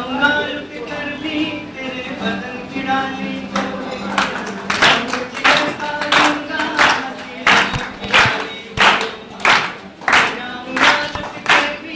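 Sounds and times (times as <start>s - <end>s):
acoustic guitar: 0.0s - 11.9s
group singing: 0.0s - 11.9s
hand claps: 3.5s - 11.9s.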